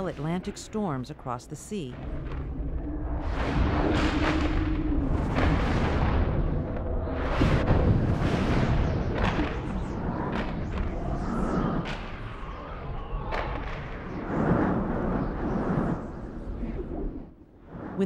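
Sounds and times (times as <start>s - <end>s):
deep rumbling: 1.9s - 18.0s
thunder cracks: 2.0s - 16.2s
rushing wind: 2.0s - 18.0s.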